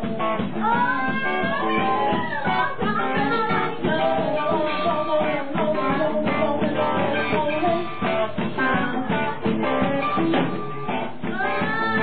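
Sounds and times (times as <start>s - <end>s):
electric guitar: 0.0s - 12.0s
live rock band playing: 0.0s - 12.0s.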